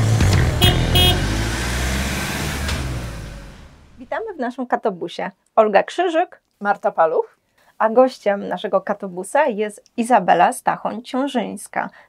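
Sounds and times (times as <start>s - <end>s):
intro music: 0.0s - 4.1s
vehicle horn beeps: 0.6s - 1.4s.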